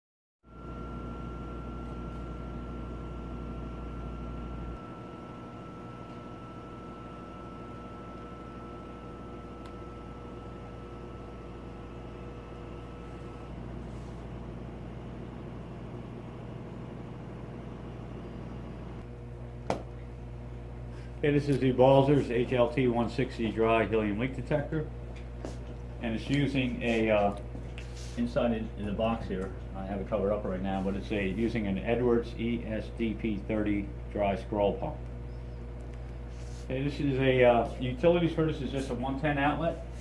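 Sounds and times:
machine hum: 0.5 - 40.0
faint steady tones: 0.6 - 13.7.

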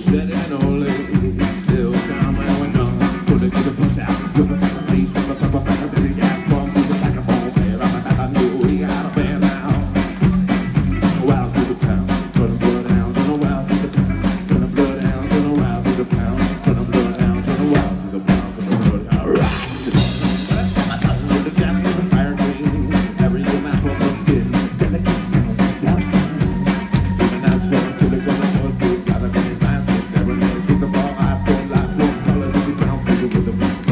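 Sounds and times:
rock band playing: 0.0 - 33.9.

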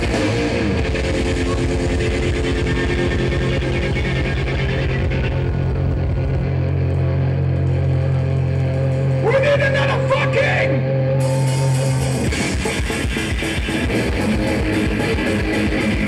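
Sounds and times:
bass guitar: 0.0 - 16.0
distorted electric guitar: 0.0 - 16.0
drums: 0.0 - 16.0.

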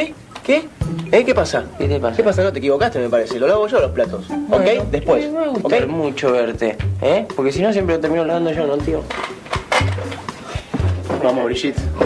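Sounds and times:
background music with low bass: 0.8 - 12.0.

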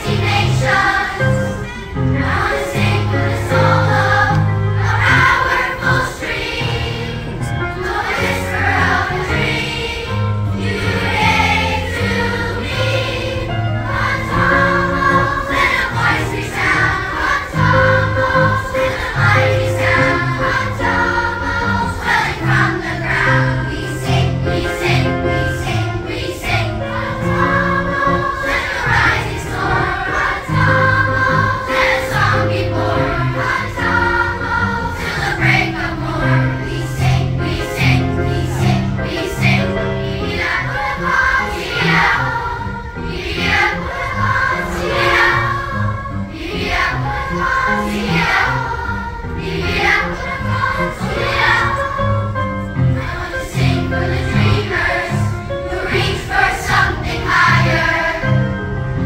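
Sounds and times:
children's choir singing: 0.0 - 59.0.

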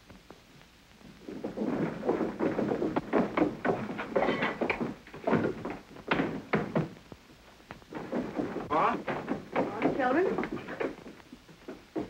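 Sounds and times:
footsteps on wooden stairs: 1.4 - 7.0, 7.7 - 12.0.

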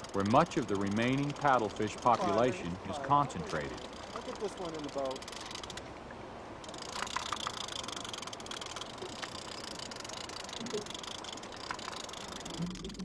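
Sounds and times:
fishing reel clicks: 0.0 - 5.9, 6.6 - 13.0
fishing reel whirring: 0.0 - 5.9, 6.6 - 13.0.

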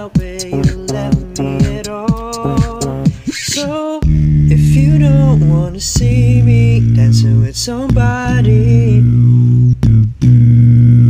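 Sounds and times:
beatboxed humming bass drone: 0.0 - 11.0.

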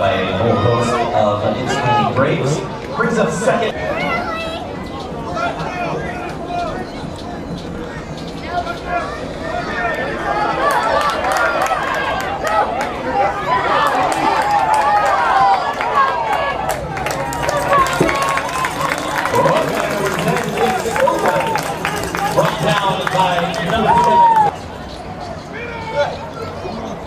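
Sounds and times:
spectators shouting and cheering: 0.0 - 27.0.

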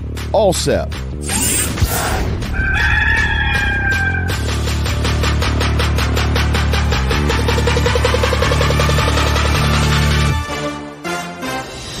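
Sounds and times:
background music: 0.0 - 12.0
rooster crowing: 2.5 - 4.4.

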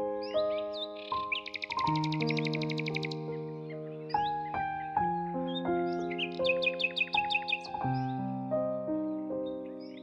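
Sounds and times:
slow gentle piano music: 0.0 - 10.0
bird chirping and trilling: 0.2 - 8.3.

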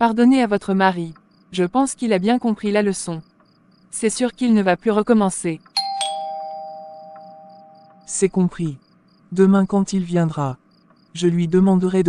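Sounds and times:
crickets chirping: 0.0 - 12.0
two-tone bell chime: 5.8 - 8.1.

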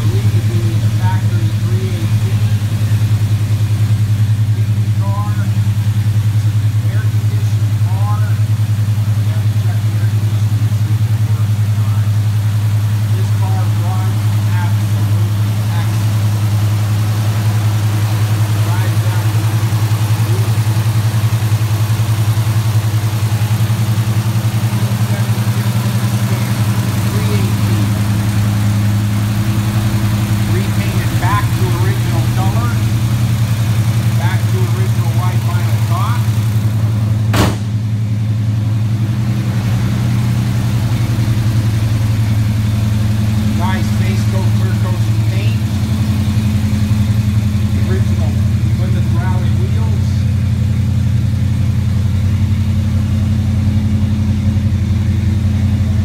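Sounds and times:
car engine idling: 0.0 - 56.0
sharp knock: 37.3 - 37.8.

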